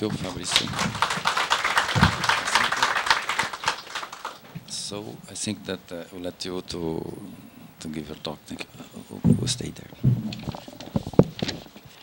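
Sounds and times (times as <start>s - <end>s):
audience applauding: 0.0s - 4.6s
low thump: 9.2s - 10.6s.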